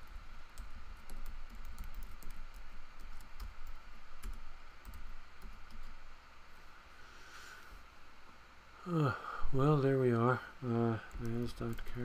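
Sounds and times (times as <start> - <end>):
typing on computer keyboard: 0.0 - 6.0, 11.1 - 12.0.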